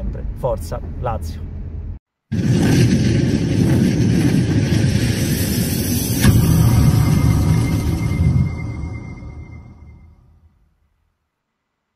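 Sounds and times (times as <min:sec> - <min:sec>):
loud dense rumble: 0:00.2 - 0:10.2
sharp hit: 0:02.3 - 0:10.6
thin high ringing tone: 0:05.0 - 0:10.6.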